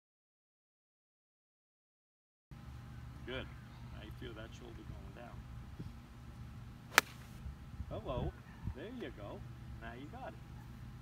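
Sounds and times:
golf club striking ball: 0:06.9 - 0:07.4.

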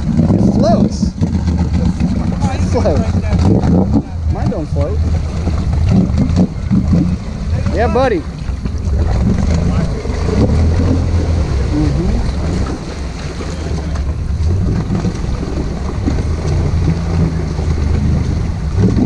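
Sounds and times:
atv engine running: 0:00.0 - 0:19.0
vehicle pushing through mud water: 0:00.0 - 0:19.0.

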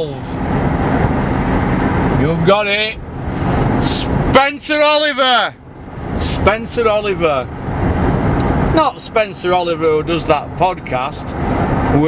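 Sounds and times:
car road noise from cabin: 0:00.0 - 0:12.0.

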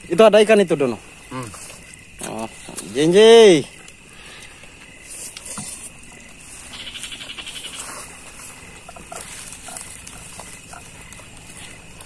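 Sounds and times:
steady high animal trill: 0:06.6 - 0:11.8.

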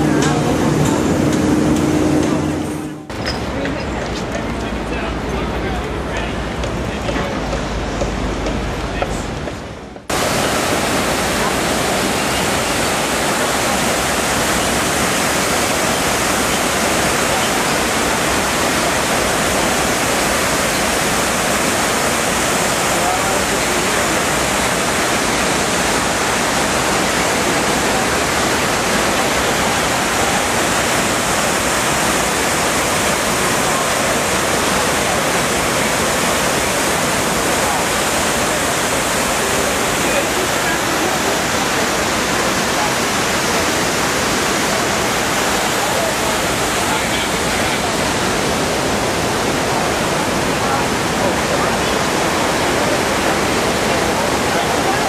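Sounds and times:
waterfall rushing: 0:00.0 - 0:04.1, 0:04.7 - 0:55.0.

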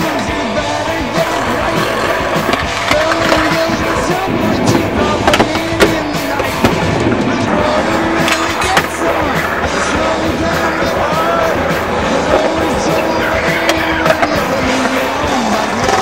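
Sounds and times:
music with a melody: 0:00.0 - 0:16.0
skateboard clacking on landing: 0:00.0 - 0:16.0
skateboard wheels rolling on concrete: 0:00.0 - 0:16.0.

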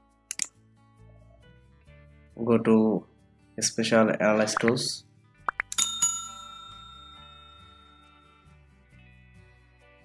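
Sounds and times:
notification bell ding: 0:05.5 - 0:08.3.

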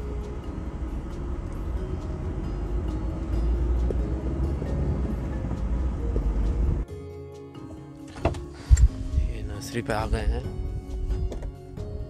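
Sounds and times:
car engine and road rumble: 0:00.0 - 0:06.9.

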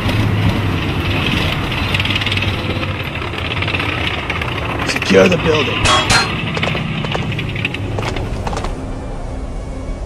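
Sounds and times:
tank engine rumble: 0:00.0 - 0:10.0
sharp clank: 0:05.8 - 0:06.8.

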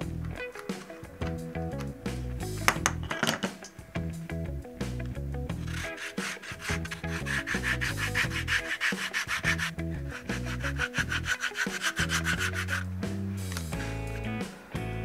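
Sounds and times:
sandpaper rubbing leather: 0:05.6 - 0:12.9.

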